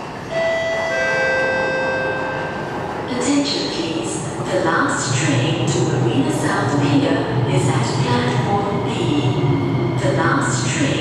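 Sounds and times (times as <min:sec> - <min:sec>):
two-tone public address chime: 0:00.3 - 0:03.9
recorded announcement voice: 0:03.0 - 0:09.4, 0:10.0 - 0:11.0.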